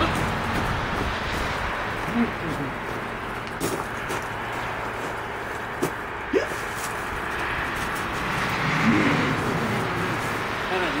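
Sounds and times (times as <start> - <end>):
car passing: 0.0 - 11.0
soft pitched vocal sounds: 2.0 - 2.8.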